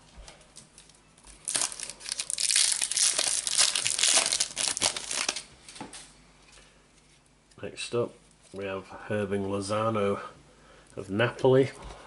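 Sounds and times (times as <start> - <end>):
foil wrapper crinkling and tearing: 0.6 - 5.5.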